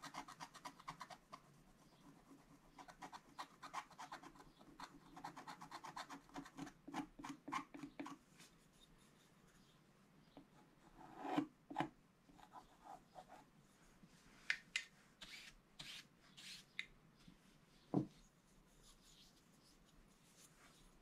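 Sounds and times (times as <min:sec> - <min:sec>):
paintbrush sweeping across paper: 0:17.3 - 0:21.0
soft knocks: 0:17.9 - 0:18.2.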